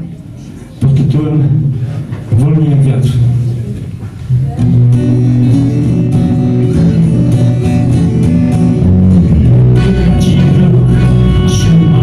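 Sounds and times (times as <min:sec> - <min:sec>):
bass guitar: 0:04.2 - 0:12.0
strummed acoustic guitar: 0:04.3 - 0:12.0
guitar chord ringing: 0:04.6 - 0:12.0.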